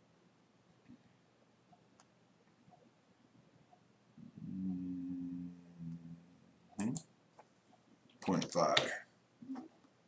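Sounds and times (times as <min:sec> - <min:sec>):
man humming: 0:04.2 - 0:06.5.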